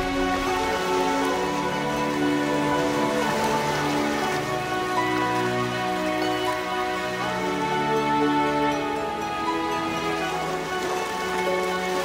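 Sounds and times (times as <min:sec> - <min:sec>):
orchestral music held chords: 0:00.0 - 0:12.0
rain patter: 0:00.0 - 0:12.0.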